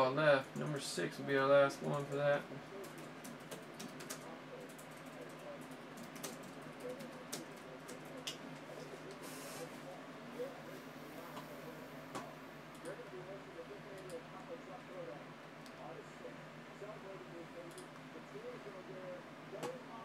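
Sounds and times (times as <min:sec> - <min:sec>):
computer keyboard typing: 0:02.8 - 0:08.4.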